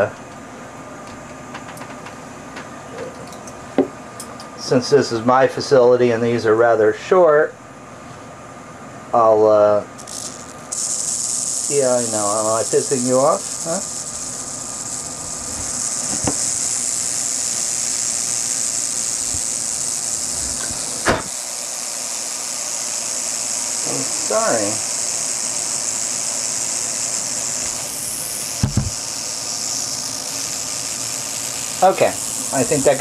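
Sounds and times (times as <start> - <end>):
rattlesnake rattling: 10.0 - 33.0.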